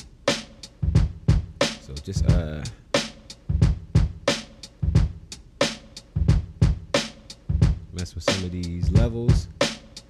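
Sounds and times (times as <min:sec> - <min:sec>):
hip-hop drum loop: 0:00.0 - 0:10.0.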